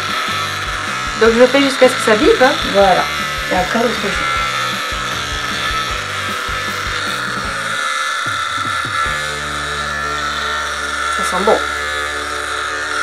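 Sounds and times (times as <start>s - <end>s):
facial cleansing brush buzzing: 0.0s - 13.0s.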